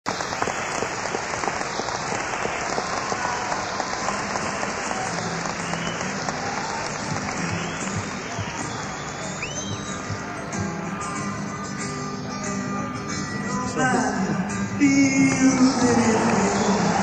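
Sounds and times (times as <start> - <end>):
audience applauding: 0.1 - 11.5, 15.2 - 17.0
band instruments playing: 3.8 - 17.0.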